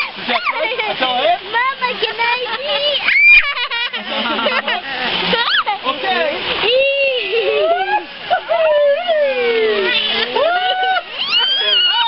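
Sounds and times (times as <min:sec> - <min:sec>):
excited voices: 0:00.0 - 0:12.0
water splashing in stream: 0:00.0 - 0:12.0
child squealing: 0:03.0 - 0:03.6, 0:11.2 - 0:12.0.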